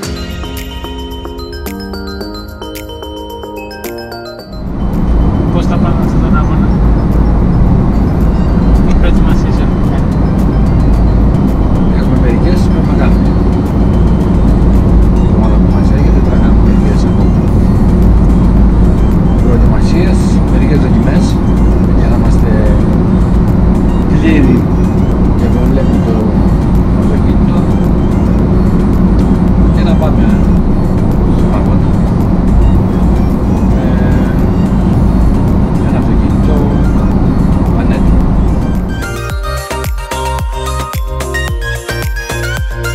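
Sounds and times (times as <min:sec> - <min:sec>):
background music: 0:00.0 - 0:42.9
car road and engine rumble: 0:00.0 - 0:42.9
people conversing: 0:04.6 - 0:39.3.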